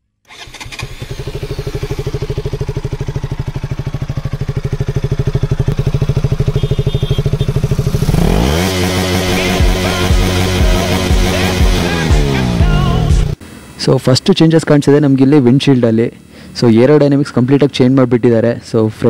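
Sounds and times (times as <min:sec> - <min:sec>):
motorcycle engine idling: 0:00.4 - 0:13.4
music: 0:09.0 - 0:13.4.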